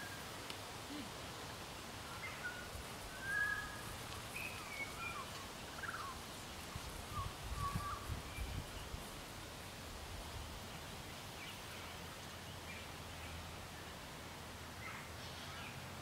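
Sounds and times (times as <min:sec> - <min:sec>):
steady outdoor hiss: 0:00.0 - 0:16.0
birds singing whistled notes: 0:02.0 - 0:06.2, 0:07.1 - 0:08.9.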